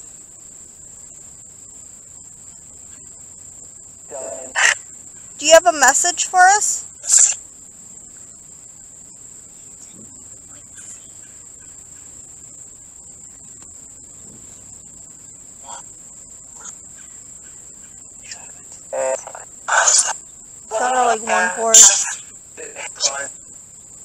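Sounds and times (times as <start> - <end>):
crickets trilling: 0.0 - 24.0
voice-like bursts from phone: 4.1 - 4.8, 18.3 - 23.3.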